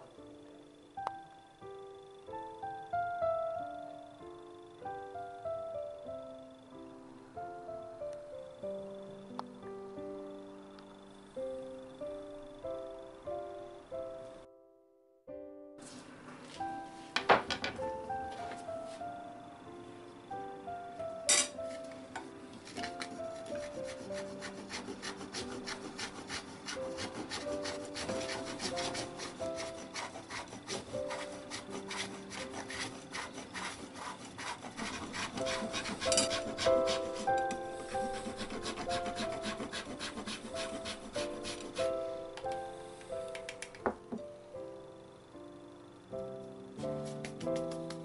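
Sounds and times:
chocolate scraping on grater: 0:22.6 - 0:41.9.

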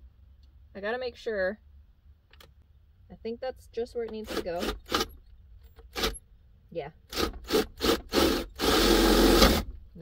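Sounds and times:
power drill boring into wood: 0:04.2 - 0:05.1, 0:07.1 - 0:09.8.

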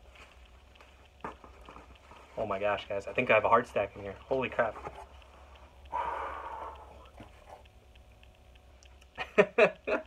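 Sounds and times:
breathy rush: 0:05.8 - 0:07.6
man laughing excitedly: 0:09.2 - 0:10.0.

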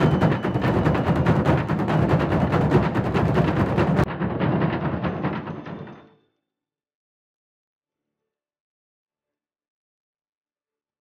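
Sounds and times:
fast festival drumming: 0:00.0 - 0:06.0.

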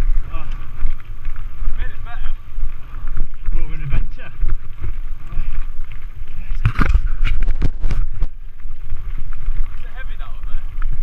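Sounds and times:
bike tyres rolling on gravel: 0:00.0 - 0:11.0
wind buffeting microphone: 0:00.0 - 0:11.0.

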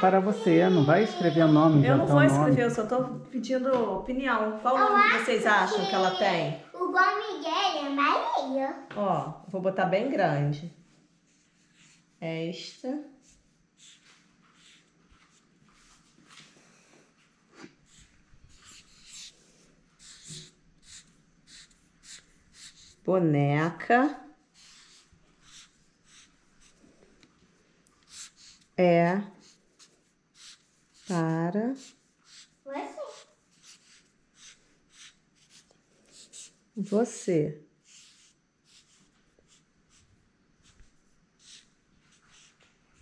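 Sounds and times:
marker scratching on paper: 0:11.2 - 0:16.5, 0:17.6 - 0:23.1, 0:24.5 - 0:26.9, 0:28.0 - 0:37.2, 0:37.8 - 0:43.0.

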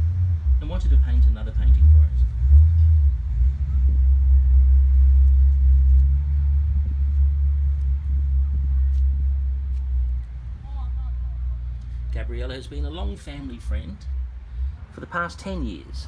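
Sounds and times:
loud low rumble: 0:00.0 - 0:14.9.

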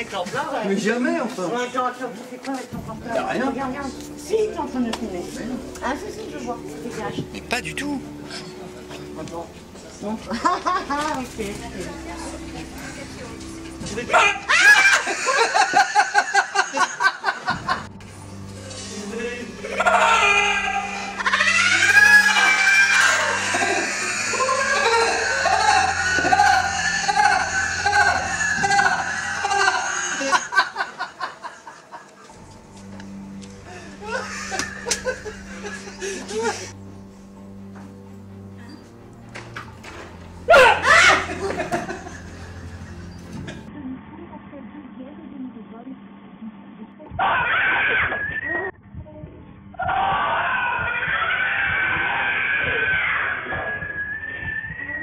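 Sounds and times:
music: 0:00.0 - 0:43.8, 0:48.4 - 0:51.2
shrieks and laughter: 0:14.1 - 0:17.8, 0:19.6 - 0:32.0, 0:33.7 - 0:36.8, 0:40.5 - 0:43.7, 0:47.1 - 0:48.7, 0:49.8 - 0:55.0
woman screaming: 0:14.2 - 0:15.2, 0:19.8 - 0:30.4, 0:40.5 - 0:41.3, 0:47.2 - 0:48.4, 0:49.8 - 0:53.8.

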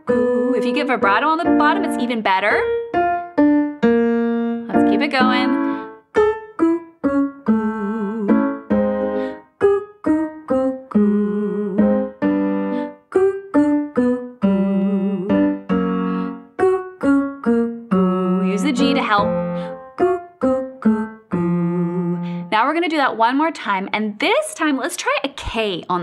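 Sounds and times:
digital piano staccato notes and chords: 0:00.0 - 0:07.2, 0:15.4 - 0:20.8.

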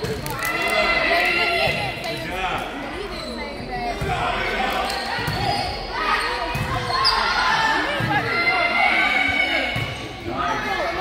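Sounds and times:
people shouting in a hall: 0:05.2 - 0:11.0.

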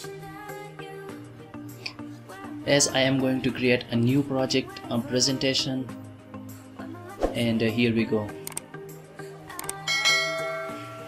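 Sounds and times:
soft background music: 0:00.0 - 0:11.0
quick clicks: 0:08.4 - 0:08.7, 0:09.5 - 0:09.8
bright bell chime: 0:09.9 - 0:11.0.

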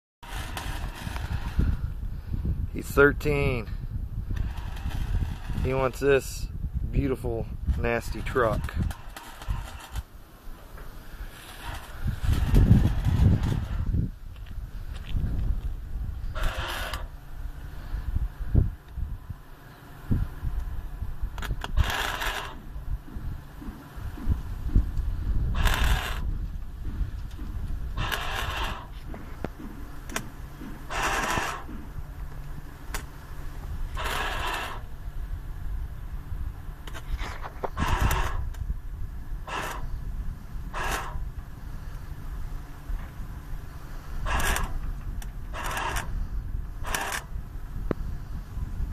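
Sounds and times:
low rumble: 0:00.2 - 0:48.9
arc welding crackle: 0:07.8 - 0:10.1, 0:28.0 - 0:29.0.

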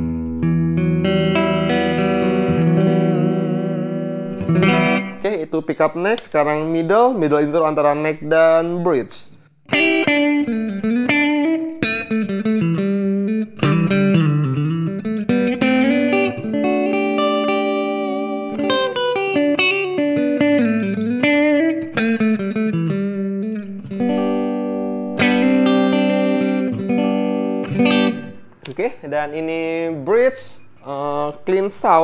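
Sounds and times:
clean electric guitar: 0:00.0 - 0:06.8, 0:08.6 - 0:29.0.

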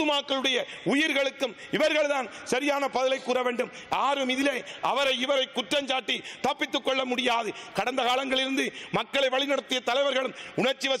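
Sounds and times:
man giving a speech: 0:00.0 - 0:11.0.

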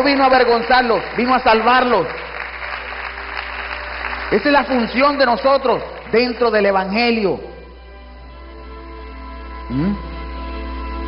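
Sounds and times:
congregation applauding: 0:00.0 - 0:07.3.

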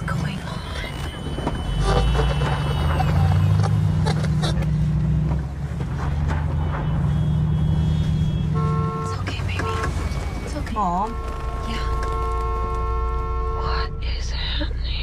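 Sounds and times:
car engine and road noise: 0:00.0 - 0:15.0.

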